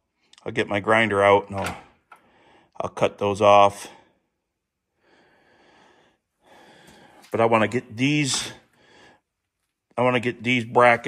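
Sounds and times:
soft breathing: 0:02.1 - 0:02.8, 0:03.8 - 0:07.4, 0:08.4 - 0:09.6.

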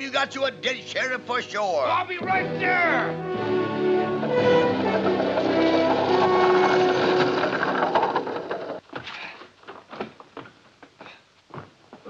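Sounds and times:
film score music: 0:00.0 - 0:08.3
horse hooves clattering: 0:02.1 - 0:12.0
buggy wheels clattering: 0:03.3 - 0:10.8.

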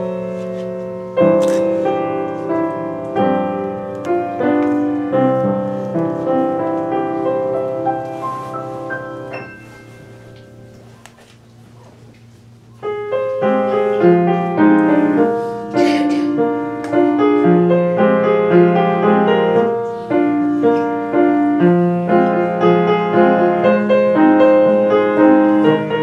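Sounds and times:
upright piano playing: 0:00.0 - 0:11.0, 0:12.7 - 0:26.0.

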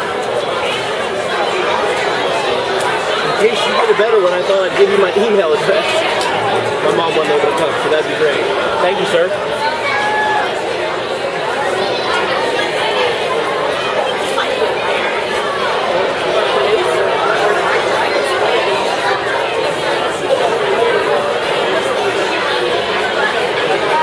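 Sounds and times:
crowd chatter in a hall: 0:00.0 - 0:24.0.

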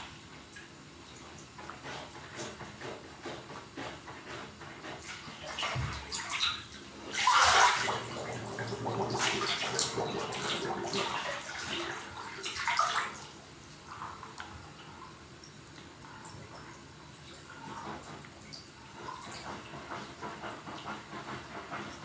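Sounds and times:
bathwater sloshing and splashing: 0:00.0 - 0:22.0.

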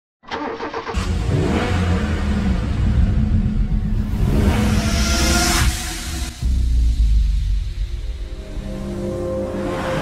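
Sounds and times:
car engine starting and running: 0:00.2 - 0:10.0.

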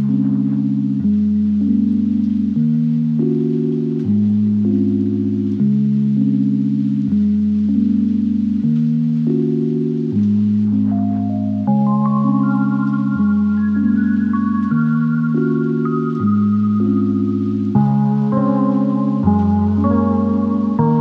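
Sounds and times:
slow sustained low chords: 0:00.0 - 0:21.0.

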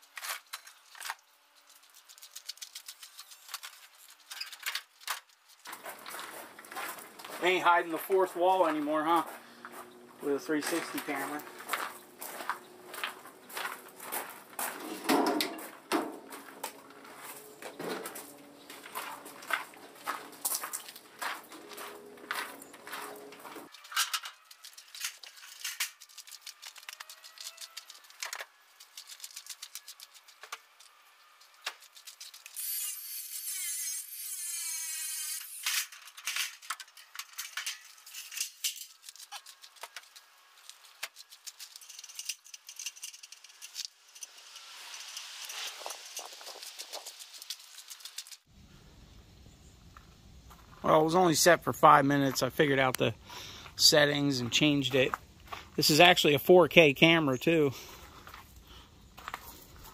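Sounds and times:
scrap metal clinking and rattling: 0:13.2 - 0:32.6, 0:35.6 - 0:48.4.

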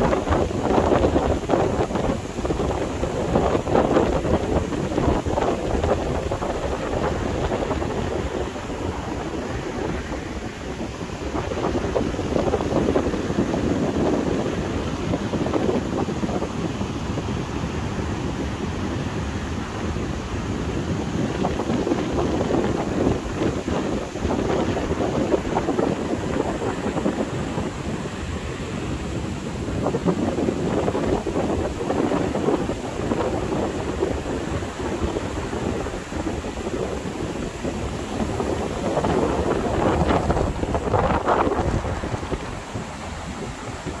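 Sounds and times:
wind buffeting microphone: 0:00.0 - 0:44.0.

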